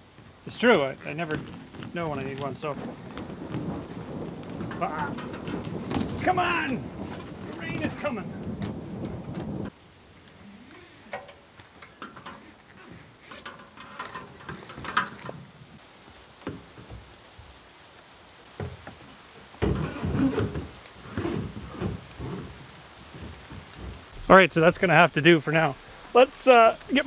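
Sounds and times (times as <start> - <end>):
light rain patter: 0.0 - 27.0
hose and tote handling knocks: 0.7 - 9.7, 11.1 - 15.5, 18.6 - 24.1.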